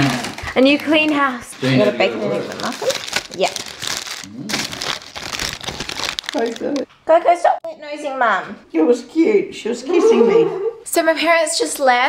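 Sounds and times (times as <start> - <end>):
paper bag crinkling: 0.0 - 6.8
person speaking: 1.5 - 3.6.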